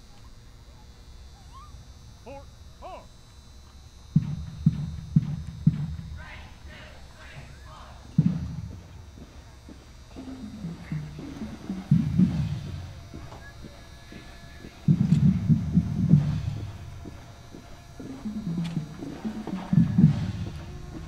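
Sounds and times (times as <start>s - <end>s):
low thumps: 4.0s - 21.0s
voice over stadium loudspeaker: 6.1s - 8.4s.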